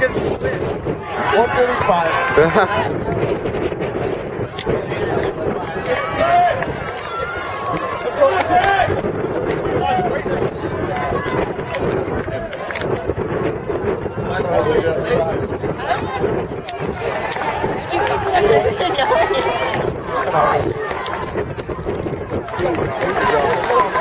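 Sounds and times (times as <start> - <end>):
crowd noise: 0.0 - 24.0
spectators talking: 0.0 - 24.0.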